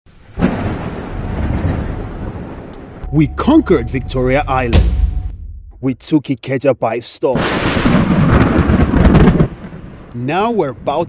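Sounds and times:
thunder rumble: 0.1s - 6.0s, 7.4s - 11.0s.

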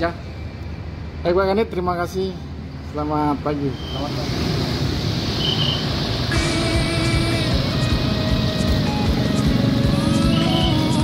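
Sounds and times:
road traffic: 0.0s - 11.0s
motorcycles passing: 4.1s - 11.0s
background music: 6.3s - 11.0s.

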